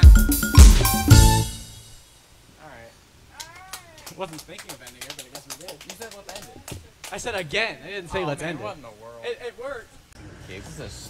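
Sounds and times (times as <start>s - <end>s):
people clapping sparsely: 3.4s - 7.5s.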